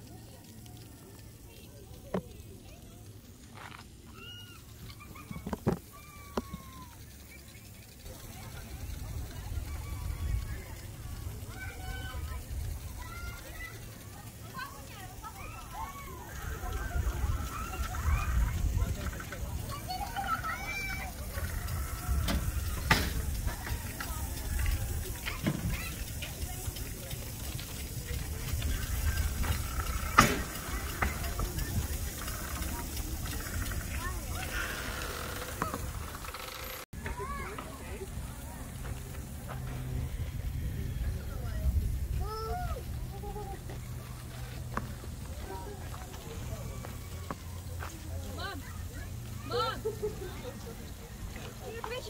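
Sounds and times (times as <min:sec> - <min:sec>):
wind buffeting microphone: 0:08.1 - 0:13.6, 0:15.4 - 0:36.3, 0:38.3 - 0:46.4.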